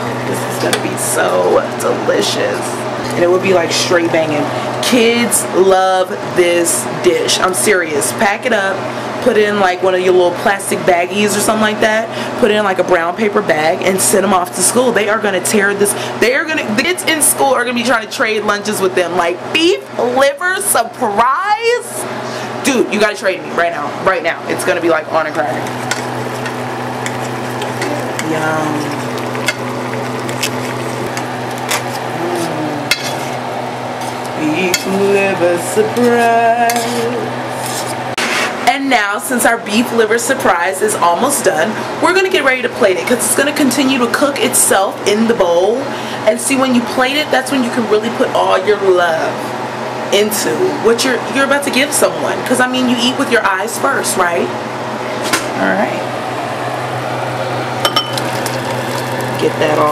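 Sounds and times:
steady low hum: 0:00.0 - 0:47.2
food sizzling in a frying pan: 0:25.4 - 0:32.2, 0:56.4 - 0:59.9
metal clinking on ceramic bowl: 0:57.8 - 0:58.4.

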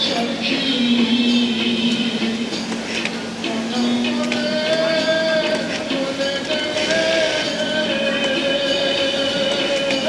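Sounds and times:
sewing machine humming: 0:06.6 - 0:09.8.

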